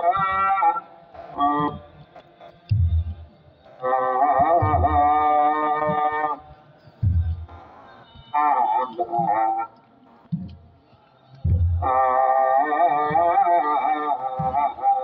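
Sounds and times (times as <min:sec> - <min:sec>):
clergy chanting in unison: 0:00.0 - 0:15.0.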